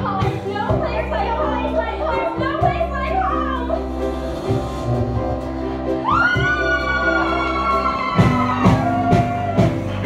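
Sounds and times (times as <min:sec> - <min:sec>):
live band music: 0:00.0 - 0:10.0.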